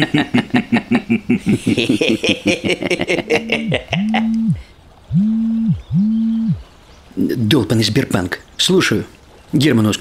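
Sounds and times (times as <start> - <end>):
mobile phone vibrating: 4.0 - 6.6.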